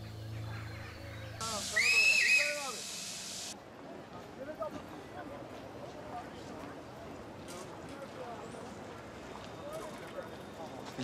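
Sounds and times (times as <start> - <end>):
train whistle blowing: 1.4 - 3.5
steam hissing: 1.4 - 3.6.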